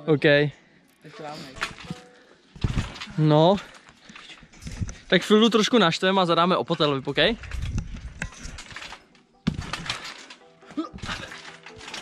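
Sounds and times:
bike bouncing on trampoline: 0:01.2 - 0:03.8, 0:06.9 - 0:12.0.

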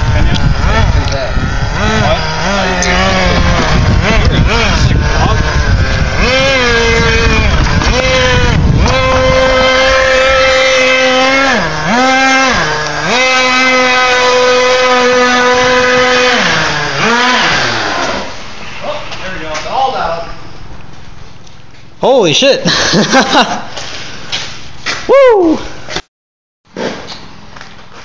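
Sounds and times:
small engine buzzing at high revs: 0:00.0 - 0:18.9.

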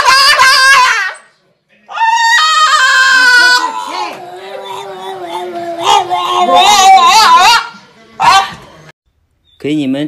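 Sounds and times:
dog howling: 0:01.9 - 0:08.6.

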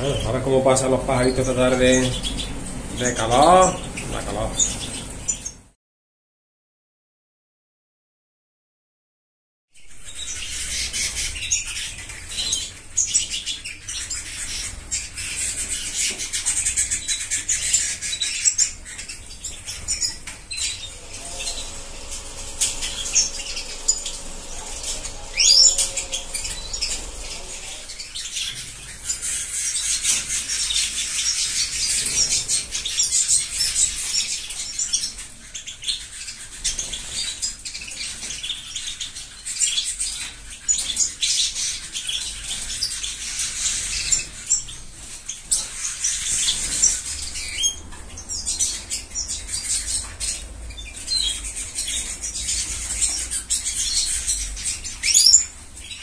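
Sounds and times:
birds chirping and twittering: 0:00.0 - 0:05.8, 0:09.8 - 0:56.0
wings fluttering: 0:19.3 - 0:29.4.

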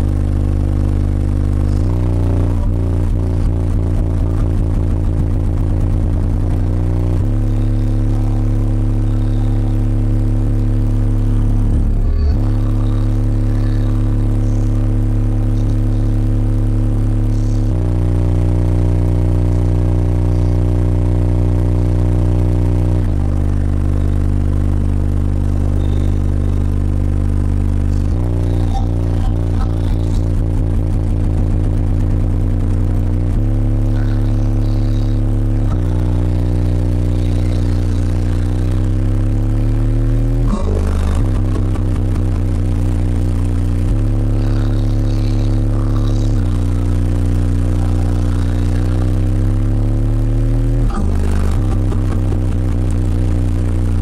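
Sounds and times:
bass-heavy music from car stereo: 0:00.0 - 0:54.0.

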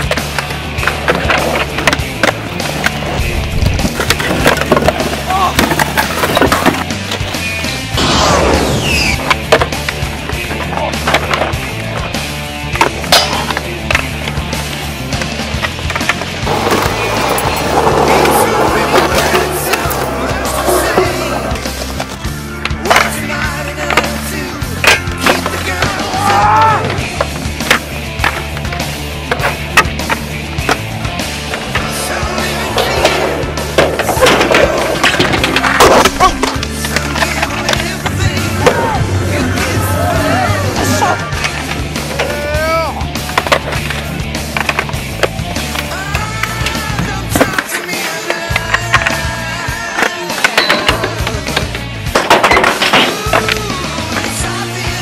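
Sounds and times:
skateboards clacking on landings: 0:00.0 - 0:07.5, 0:09.2 - 0:55.0
skateboard tails popping: 0:00.0 - 0:07.9, 0:08.8 - 0:55.0
background music with bass line: 0:00.0 - 0:55.0
skateboard grinds and slides: 0:00.0 - 0:55.0
skateboard wheels rolling: 0:00.0 - 0:55.0.

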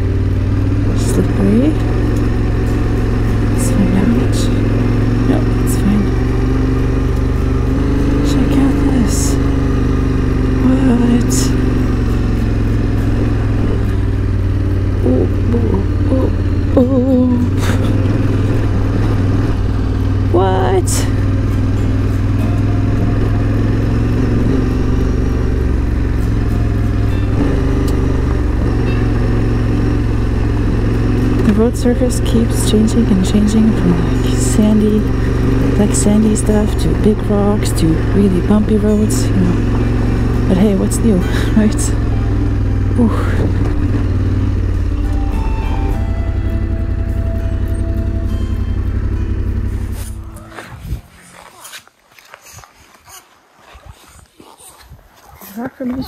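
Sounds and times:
motorcycle engine running: 0:00.0 - 0:52.4.

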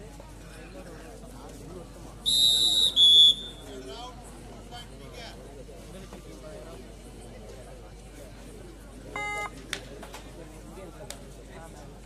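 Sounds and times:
referee's whistle blasts: 0:02.2 - 0:03.7.

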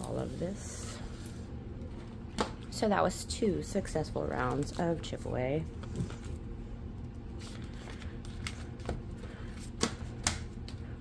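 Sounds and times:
plastic envelopes rustling: 0:07.4 - 0:10.8
paper bills handled: 0:07.4 - 0:10.9.

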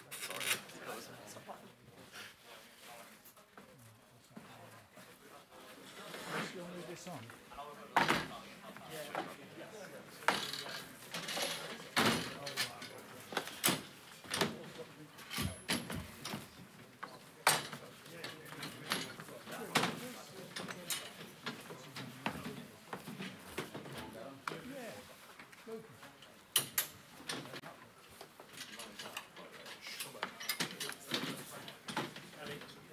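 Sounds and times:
murmur of people talking: 0:00.0 - 0:32.9
furniture knocking and clattering: 0:15.4 - 0:16.7.

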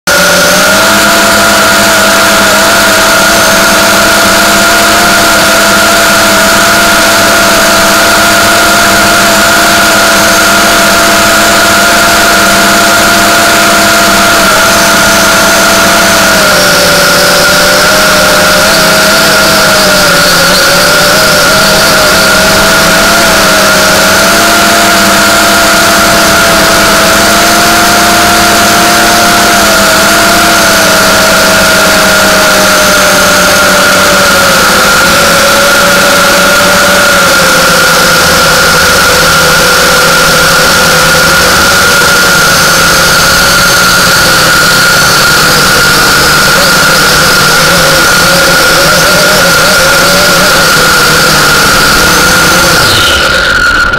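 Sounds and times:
drone propellers buzzing: 0:00.0 - 0:53.9.

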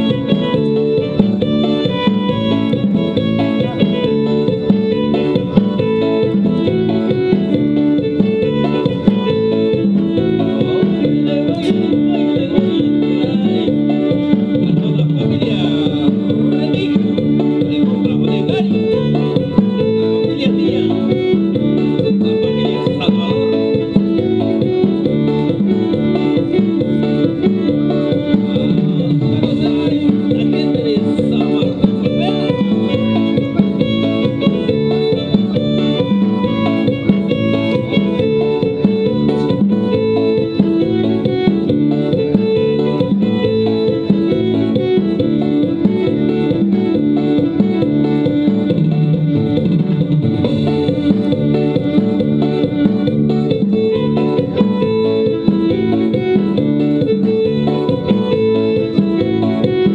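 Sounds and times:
live band playing dance music: 0:00.0 - 0:59.9.

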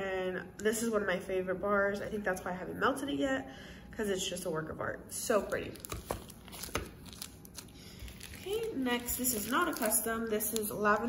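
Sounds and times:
plastic bag crinkling: 0:05.5 - 0:11.0.

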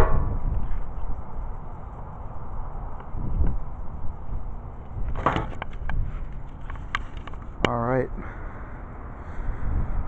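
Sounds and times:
low rumble: 0:00.0 - 0:05.2.

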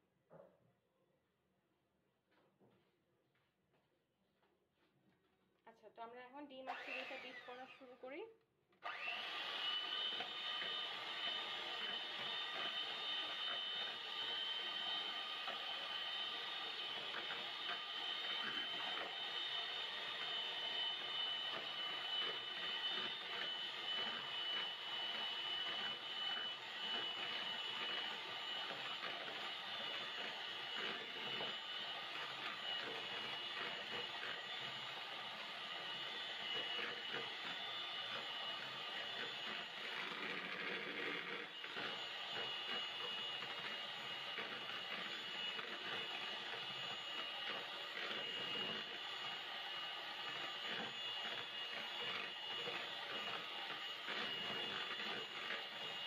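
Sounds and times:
electric hand mixer running: 0:06.5 - 0:08.2, 0:08.8 - 0:56.0.

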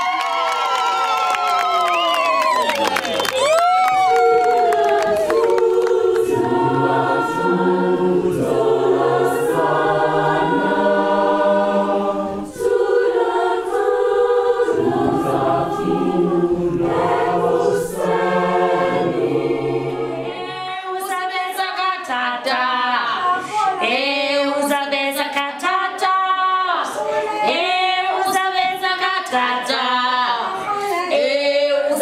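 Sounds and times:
choir singing in harmony: 0:04.0 - 0:32.0.

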